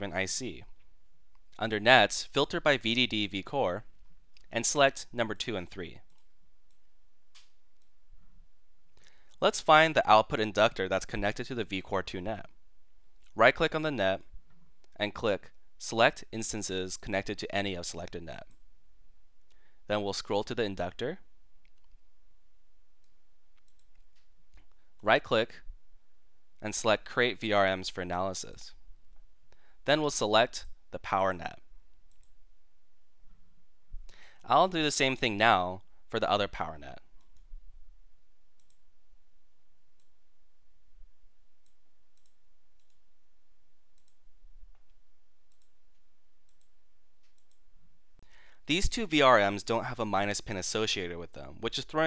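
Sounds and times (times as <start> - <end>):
low room hiss: 0.0 - 52.0
faint clicks: 23.0 - 24.8, 31.9 - 32.4, 41.6 - 43.0, 43.9 - 47.6.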